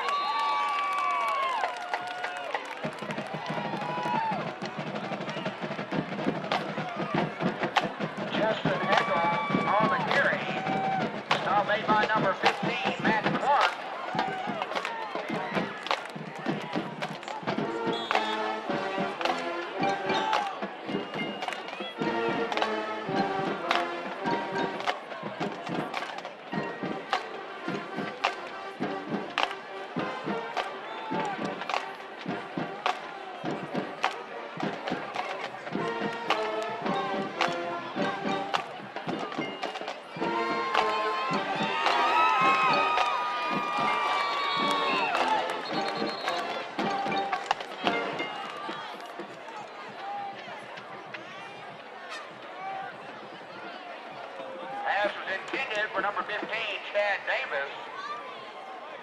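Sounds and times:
crowd voices: 0.0 - 59.0.

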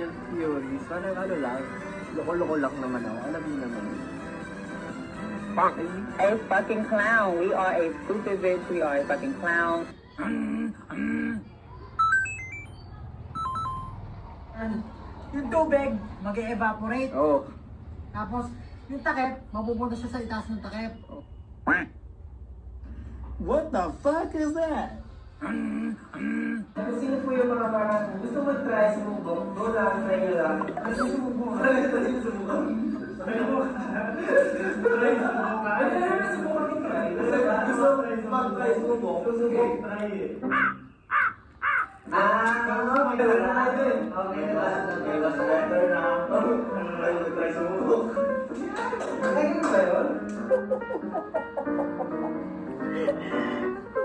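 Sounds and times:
short electronic beeps: 12.0 - 14.1
harsh caw-like bird calls: 40.4 - 42.1.

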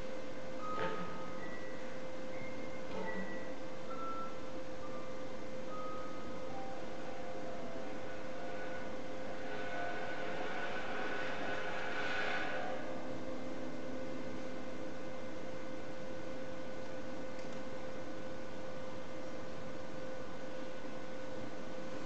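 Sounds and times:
hissing swell with high tones: 6.7 - 14.3.

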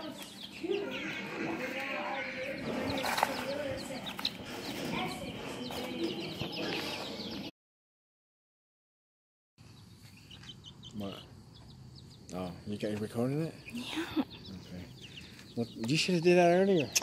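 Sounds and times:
baby chicks peeping: 0.0 - 7.5, 9.6 - 17.0.

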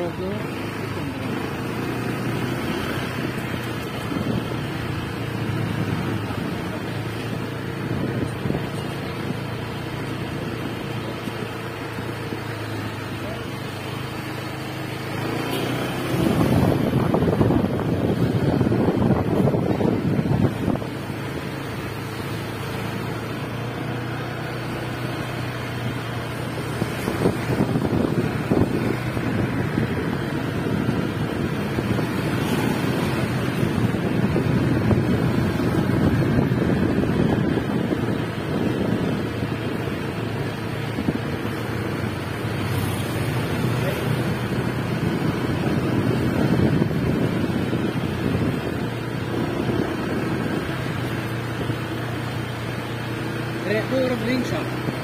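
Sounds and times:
wind buffeting microphone: 0.0 - 12.7, 15.8 - 53.6
motor scooter running: 0.0 - 55.0.

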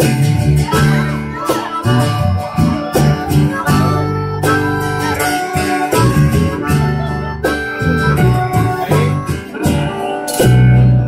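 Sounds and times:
cajon beats: 0.0 - 11.0
harmonica long notes: 0.0 - 11.0
low guitar notes: 0.0 - 11.0
strummed acoustic guitar: 0.0 - 11.0.

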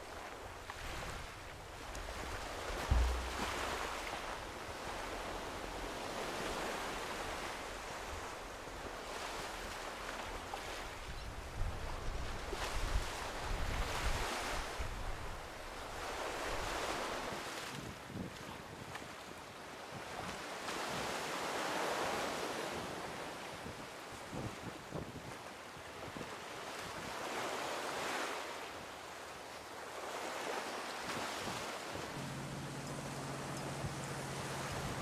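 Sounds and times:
wind on microphone: 0.0 - 7.0, 31.4 - 35.0
ocean surf on rocky shore: 0.0 - 11.0, 30.0 - 35.0.

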